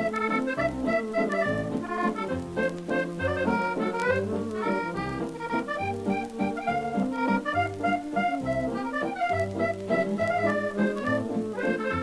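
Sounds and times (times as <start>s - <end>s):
accordion melody: 0.0s - 12.0s.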